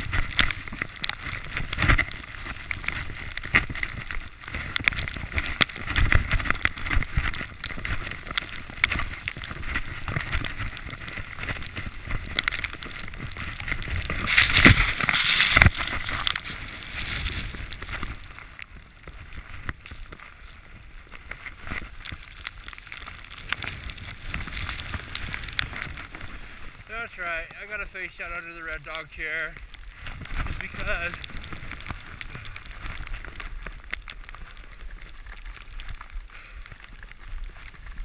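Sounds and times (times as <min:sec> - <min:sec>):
wind on microphone: 0:00.0 - 0:18.3
skis hissing through powder snow: 0:04.5 - 0:18.5, 0:19.1 - 0:35.8.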